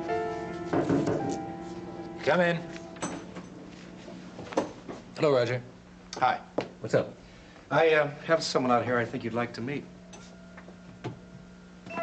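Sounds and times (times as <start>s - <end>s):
soft footsteps: 0.0s - 5.2s
steady low hum: 0.0s - 12.0s.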